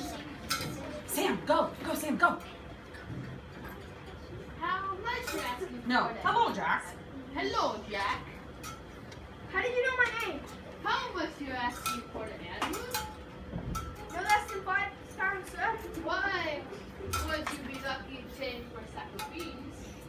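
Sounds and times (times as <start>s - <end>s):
children talking: 0.0s - 20.0s.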